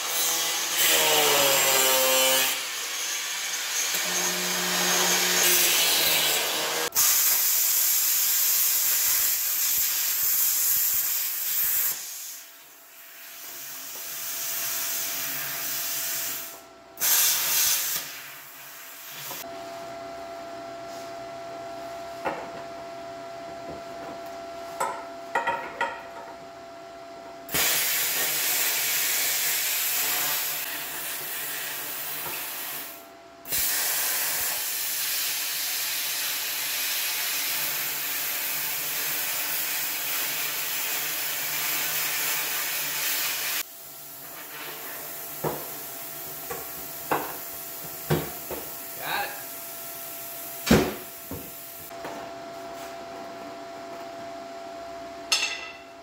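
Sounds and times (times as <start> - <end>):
angle grinder cutting steel: 0.0 - 6.9.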